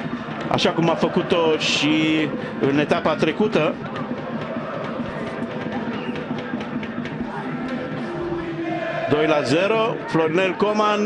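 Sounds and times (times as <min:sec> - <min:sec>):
faint crowd singing: 0:00.0 - 0:11.0
stadium crowd hubbub: 0:00.0 - 0:11.0.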